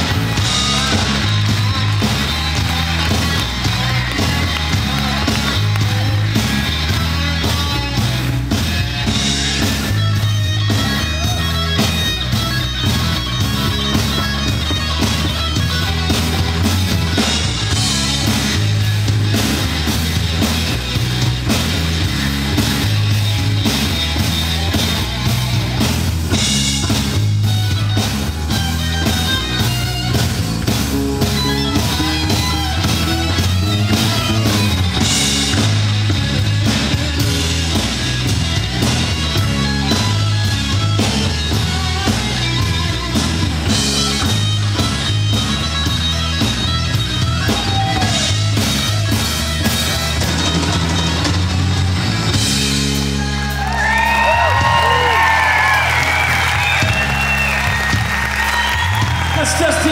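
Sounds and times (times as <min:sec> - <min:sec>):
bass line: 0:00.0 - 0:59.9
drums: 0:00.0 - 0:59.9
electric guitar: 0:00.0 - 0:59.9.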